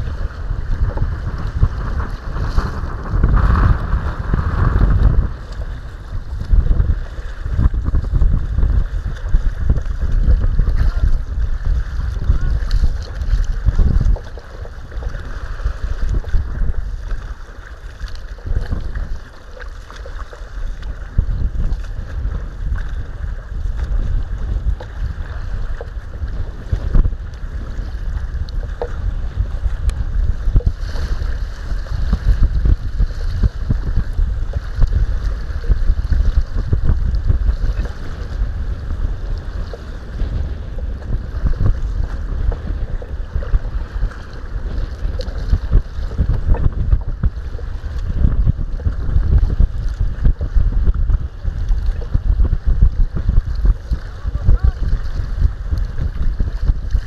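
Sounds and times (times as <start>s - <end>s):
water splashing against kayak: 0.0s - 57.0s
wind buffeting microphone: 0.0s - 57.0s.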